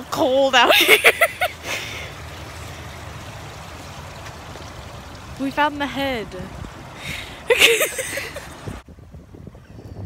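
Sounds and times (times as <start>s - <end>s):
fountain water splashing into pool: 0.0s - 8.8s.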